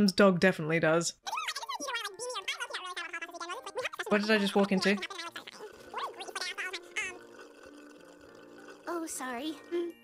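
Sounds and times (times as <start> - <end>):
high-pitched cartoon gibberish chatter: 1.2 - 7.6.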